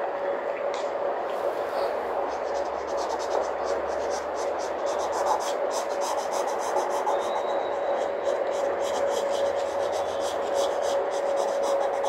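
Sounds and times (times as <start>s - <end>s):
steady background hum: 0.0s - 12.0s
pencil sketching on paper: 2.2s - 12.0s.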